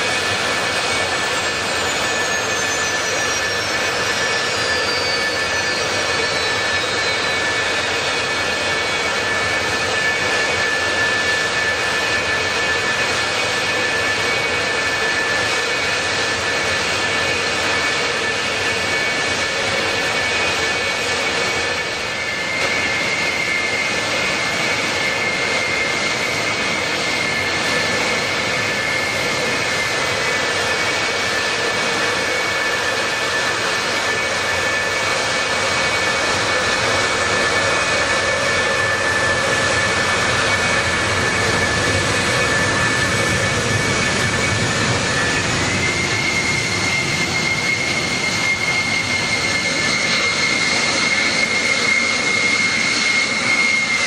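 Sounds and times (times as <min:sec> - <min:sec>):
jet engines running: 0:00.0 - 0:54.0.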